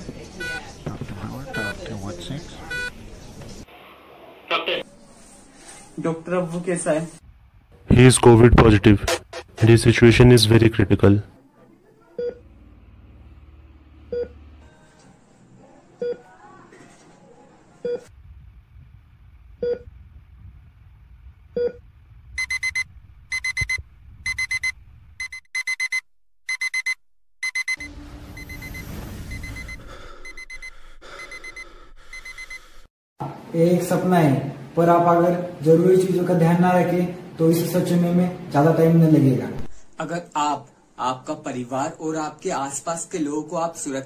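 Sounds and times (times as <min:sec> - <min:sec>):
patient monitor single beeps: 0:01.5 - 0:01.8, 0:22.4 - 0:30.7
rapid high-pitched alarm beeping: 0:22.4 - 0:32.6.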